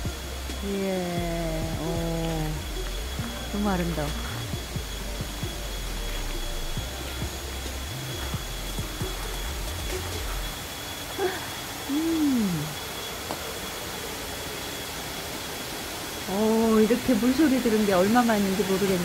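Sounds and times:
low rumble: 0:00.0 - 0:10.8.

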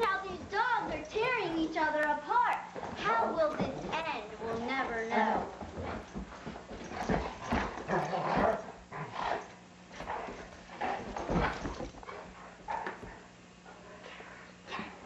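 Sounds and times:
dogs play-fighting noises: 0:00.0 - 0:15.0.

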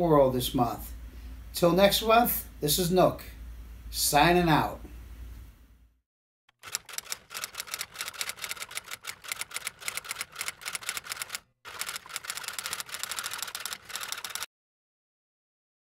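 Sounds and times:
rapid keyboard typing: 0:06.5 - 0:14.5.

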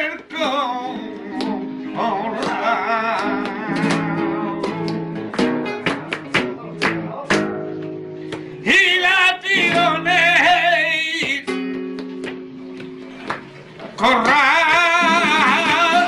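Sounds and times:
man singing ornamented line: 0:00.0 - 0:04.9, 0:08.6 - 0:11.5, 0:14.0 - 0:16.0
guitar strums: 0:00.0 - 0:16.0
held guitar chords: 0:00.0 - 0:16.0.

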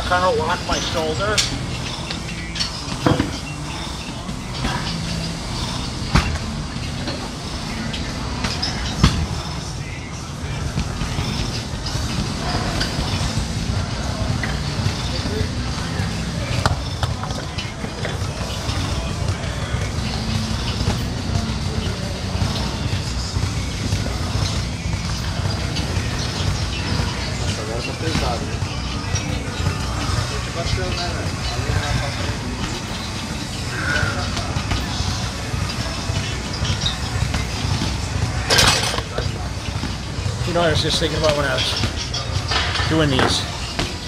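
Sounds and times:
indistinct background voices: 0:00.0 - 0:44.0
metal weights clanking: 0:00.0 - 0:44.0.

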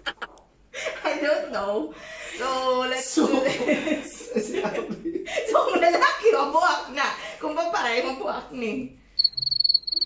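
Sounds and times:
cricket chirping: 0:09.2 - 0:10.0.

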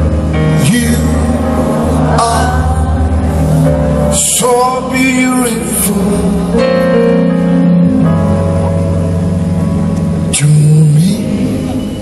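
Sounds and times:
live band playing a ballad: 0:00.0 - 0:12.0.

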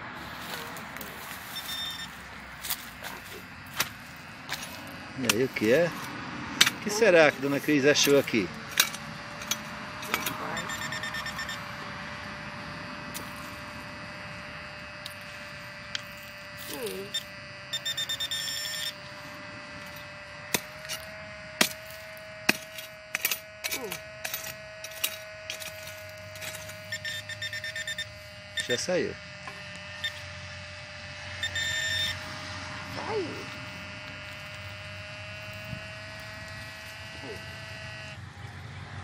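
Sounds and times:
digging tool scraping dirt: 0:00.0 - 0:12.4, 0:13.0 - 0:37.8
metal detector beeping: 0:00.2 - 0:38.2.

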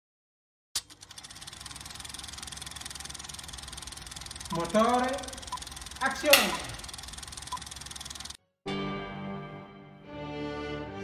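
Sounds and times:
film projector clattering: 0:00.8 - 0:08.4
sharp click: 0:04.6 - 0:08.4.

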